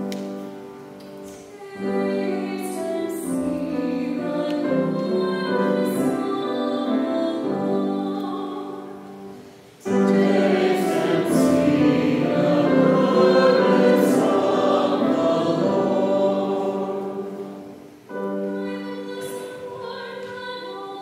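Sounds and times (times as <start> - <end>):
piano accompaniment: 0.0 - 21.0
choir singing: 2.0 - 6.2, 9.8 - 17.9.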